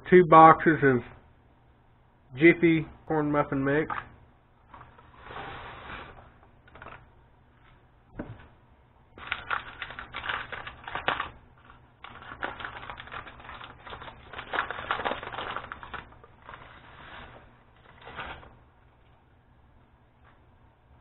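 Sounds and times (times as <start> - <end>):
paper crinkling rustles: 6.1 - 7.0, 9.2 - 18.6.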